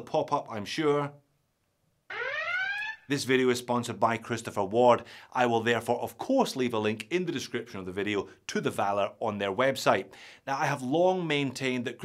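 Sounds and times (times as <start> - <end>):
rising electronic tone: 2.1 - 3.1.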